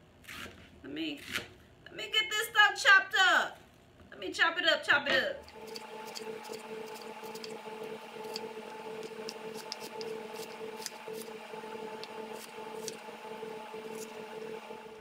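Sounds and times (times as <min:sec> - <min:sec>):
steady hum: 0:05.2 - 0:15.0.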